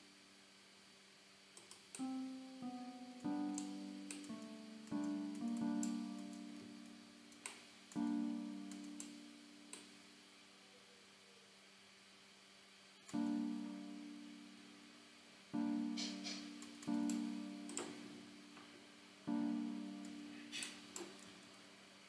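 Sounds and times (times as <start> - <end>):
faint mouse clicks: 1.6 - 2.1
plucked keyboard chords: 2.0 - 10.0, 13.1 - 21.2.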